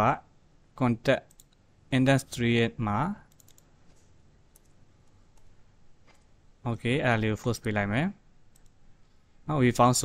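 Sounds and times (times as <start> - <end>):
low room hiss: 0.0 - 10.0
computer keyboard clicks: 3.3 - 4.8, 8.5 - 8.8
mouse clicks: 3.3 - 6.3, 8.5 - 8.8.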